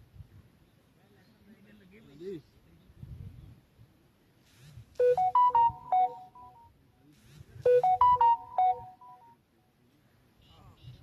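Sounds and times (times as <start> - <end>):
phone ringtone beeping tune: 5.0 - 6.7, 7.7 - 9.4.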